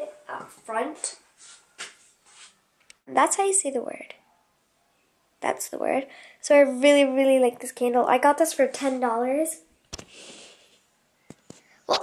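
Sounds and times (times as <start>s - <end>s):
girl's voice: 0.0s - 1.2s, 3.1s - 4.1s, 5.4s - 9.7s.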